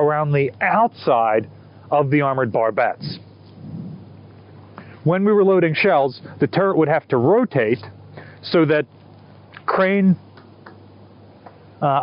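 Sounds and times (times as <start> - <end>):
outdoor hiss: 0.0 - 12.0
wind rumbling on microphone: 3.0 - 4.3.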